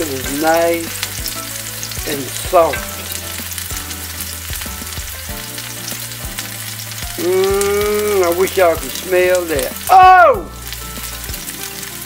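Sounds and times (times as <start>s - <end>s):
food sizzling in a skillet: 0.0s - 12.0s
fork knocking against pan: 2.7s - 3.2s.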